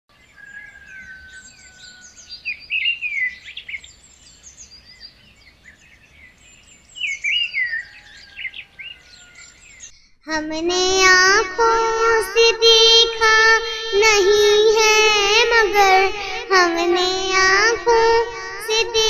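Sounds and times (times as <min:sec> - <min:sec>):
birds chirping and whistling: 0:00.1 - 0:10.1.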